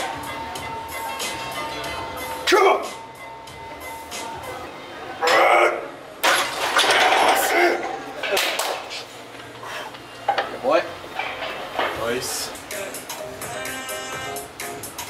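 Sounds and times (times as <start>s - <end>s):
people calling out: 5.2s - 6.0s.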